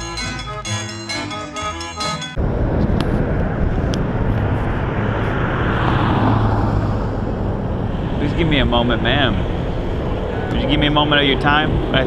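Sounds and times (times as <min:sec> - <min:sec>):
music: 0:00.0 - 0:02.4
traffic rumble: 0:02.3 - 0:12.0
car passing: 0:02.4 - 0:12.0.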